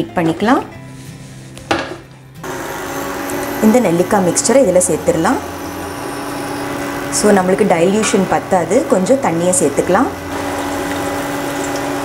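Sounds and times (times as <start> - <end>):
woman's voice: 0.0 - 0.7, 3.6 - 5.5, 7.2 - 10.2
steady even hum: 2.4 - 12.0.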